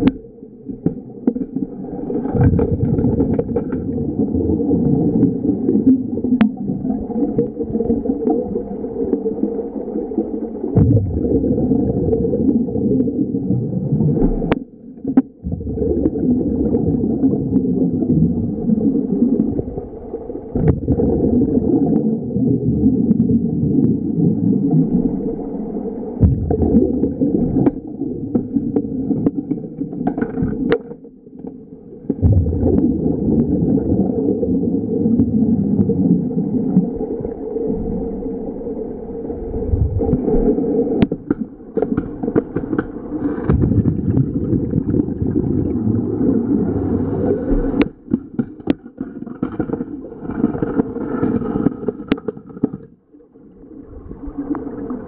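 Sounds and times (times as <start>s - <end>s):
air bubbles gurgling underwater: 0.0s - 55.0s.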